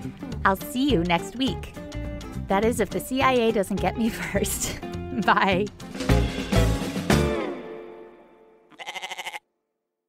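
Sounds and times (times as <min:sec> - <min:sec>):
outro music: 0:05.7 - 0:08.5
goat bleat: 0:08.7 - 0:09.4.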